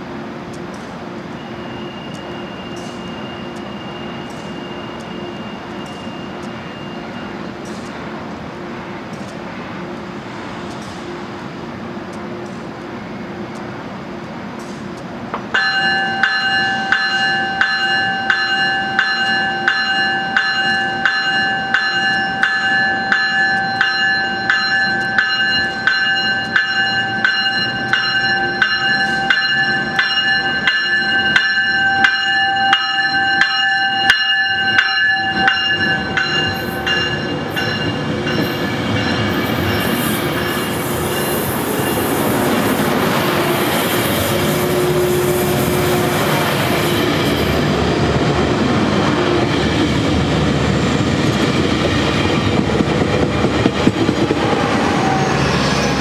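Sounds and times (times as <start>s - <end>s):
train coaches rolling past: 0.0s - 56.0s
bell ringing: 1.4s - 7.6s, 15.6s - 42.3s.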